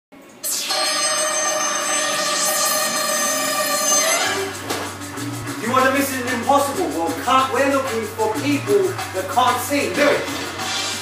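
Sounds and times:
electronic ringing tone: 0.4s - 4.6s.

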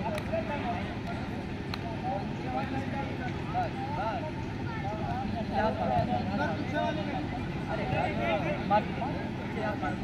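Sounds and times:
distant people talking and calling out: 0.0s - 10.0s.

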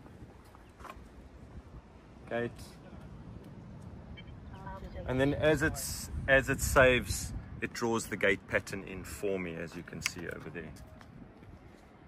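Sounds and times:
wind rumbling on microphone: 0.0s - 2.2s, 2.9s - 12.0s.

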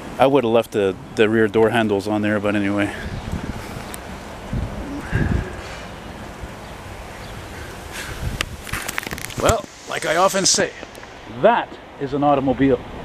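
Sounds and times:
steady outdoor hiss: 0.0s - 13.0s
wind gusting on microphone: 0.0s - 13.0s.

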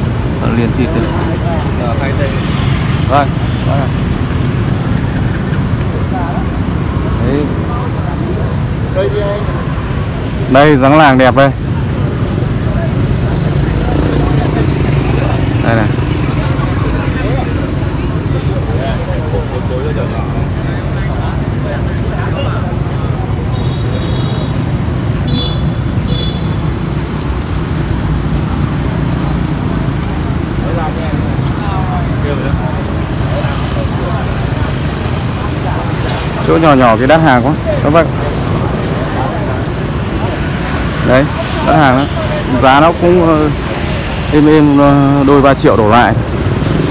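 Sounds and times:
people talking in background: 0.0s - 46.9s
street traffic rumble: 0.0s - 46.9s.

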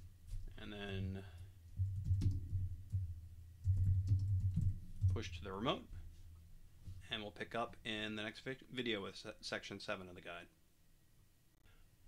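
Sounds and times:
typing on computer keyboard: 3.6s - 5.2s.

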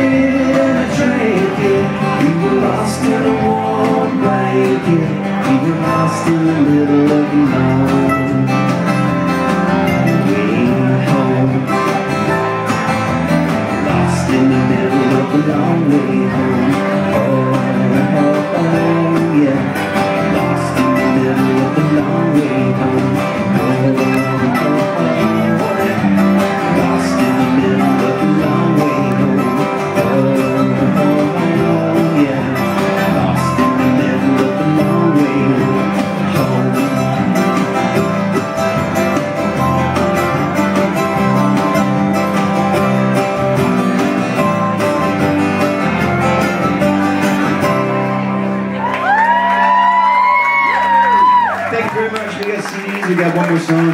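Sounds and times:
mandolin: 0.0s - 52.7s
acoustic guitar: 0.0s - 53.9s
electric guitar: 0.0s - 53.9s.

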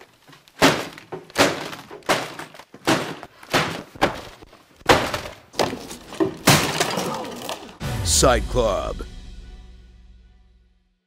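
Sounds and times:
laptop smashed onto desk: 0.5s - 7.6s.

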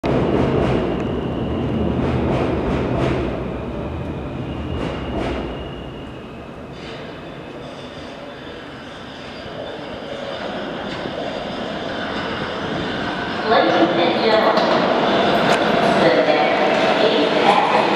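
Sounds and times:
subway train rumble: 0.0s - 17.9s.

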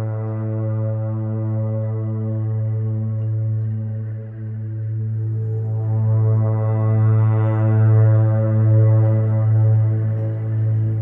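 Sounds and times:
ambient music with held notes: 0.0s - 11.0s.

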